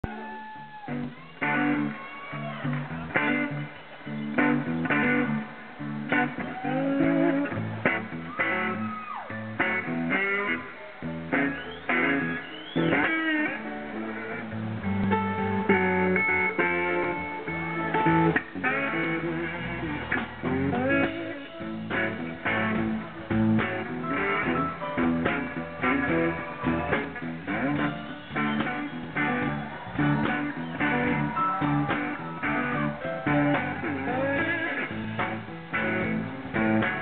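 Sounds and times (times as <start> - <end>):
electric slide guitar blues: 0.0 - 37.0.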